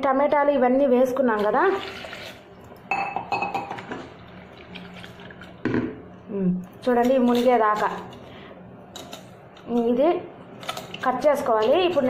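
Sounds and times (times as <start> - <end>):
water pouring into pressure cooker: 1.6 - 2.4.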